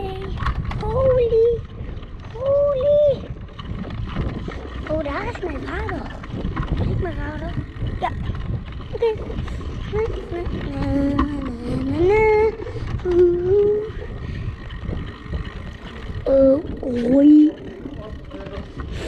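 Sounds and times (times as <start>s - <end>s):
bike tyres rolling on brick: 0.0s - 19.0s
wind rumble: 0.0s - 19.0s
child humming: 10.7s - 14.2s, 16.2s - 17.7s.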